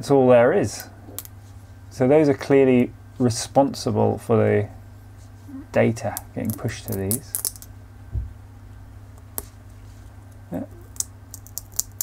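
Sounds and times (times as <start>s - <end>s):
steady low hum: 0.0s - 12.0s
soft low bump: 8.1s - 8.4s
fingers clicking on circuit board: 10.8s - 12.0s.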